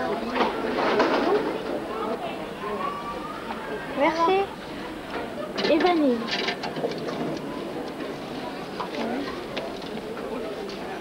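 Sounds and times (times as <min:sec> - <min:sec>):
background bustle of people: 0:00.0 - 0:11.0.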